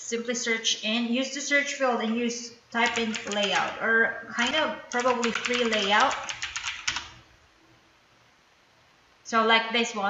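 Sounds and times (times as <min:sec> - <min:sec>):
computer keyboard typing: 0:02.8 - 0:03.8, 0:04.4 - 0:07.2.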